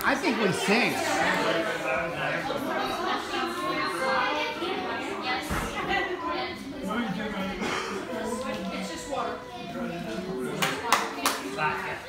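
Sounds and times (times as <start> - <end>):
people talking indistinctly: 0.0 - 12.0
sharp hand claps: 10.6 - 11.5.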